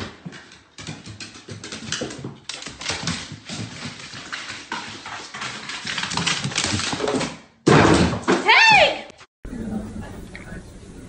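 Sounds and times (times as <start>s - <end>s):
dog paws clattering on wooden stairs: 0.0s - 8.4s.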